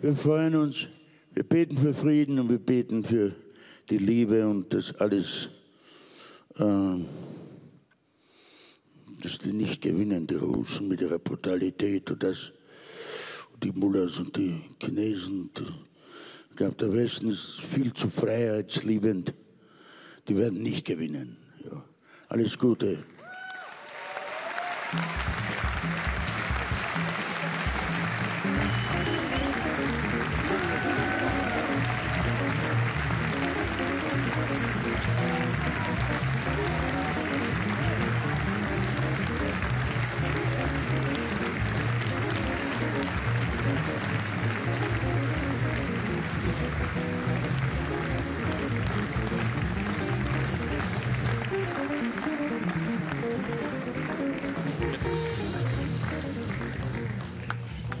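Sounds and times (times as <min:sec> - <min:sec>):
audience applauding: 0:23.2 - 0:58.0
band music: 0:25.0 - 0:58.0.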